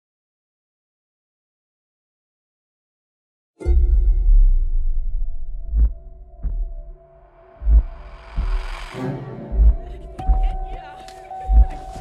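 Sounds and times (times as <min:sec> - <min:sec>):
heavy low thumps: 0:03.7 - 0:10.8, 0:11.4 - 0:12.0
deep sustained low drone: 0:03.8 - 0:10.0.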